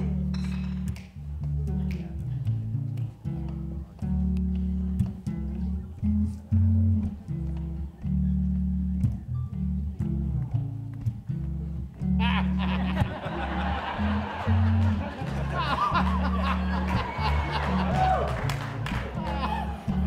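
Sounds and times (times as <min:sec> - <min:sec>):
electric bass guitar: 0:00.0 - 0:20.0.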